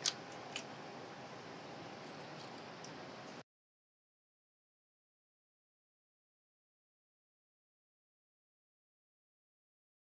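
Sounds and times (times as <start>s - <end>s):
steady low hiss: 0.0s - 3.4s.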